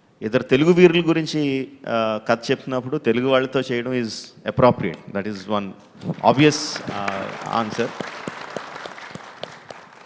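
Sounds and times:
audience applause: 0:06.0 - 0:10.0.

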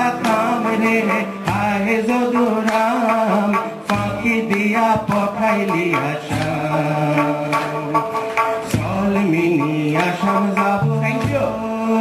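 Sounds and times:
folk-rock band playing: 0:00.0 - 0:12.0
sharp drum hits: 0:02.7 - 0:11.8.

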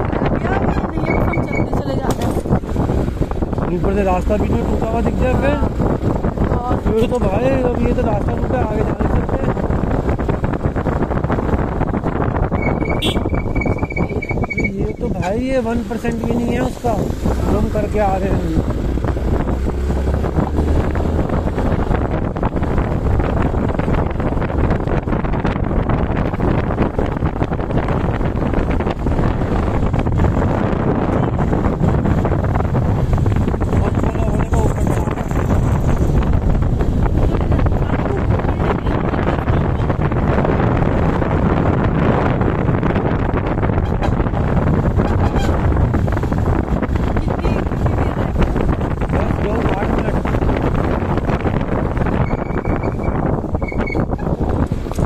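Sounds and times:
motorcycle engine: 0:00.0 - 0:55.0
wind buffeting microphone: 0:00.0 - 0:55.0.

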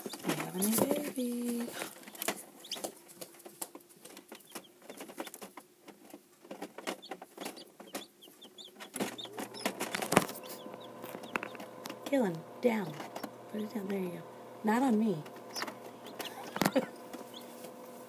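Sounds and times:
chicks peeping: 0:00.0 - 0:14.2, 0:15.2 - 0:18.0
clicks and taps: 0:08.7 - 0:12.4
low hum with tones: 0:09.0 - 0:18.0.

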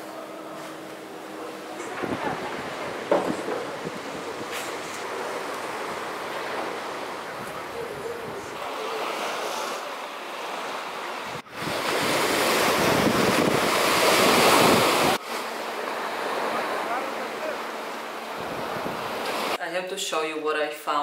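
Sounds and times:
waves washing up a sandy beach: 0:01.8 - 0:19.6.

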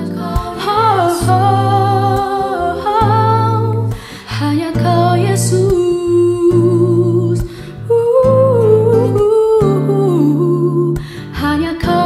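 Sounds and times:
sustained instrumental chords: 0:00.0 - 0:05.6
woman singing: 0:00.0 - 0:12.0.

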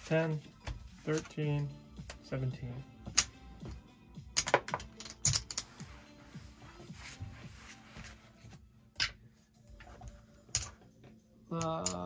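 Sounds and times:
music: 0:00.0 - 0:12.0
casino chips clicking: 0:04.4 - 0:05.7.

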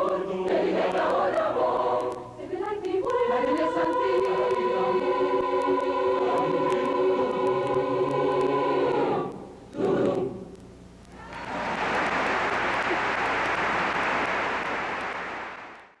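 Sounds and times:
choir singing: 0:00.0 - 0:10.5
audience applause: 0:11.2 - 0:16.0.

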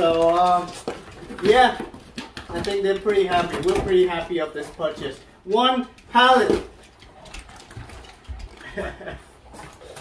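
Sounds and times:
dogs scuffling: 0:00.0 - 0:10.0.

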